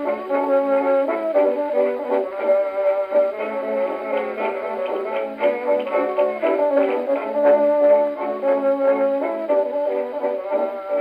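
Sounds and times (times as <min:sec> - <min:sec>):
dance orchestra record on gramophone: 0:00.0 - 0:11.0.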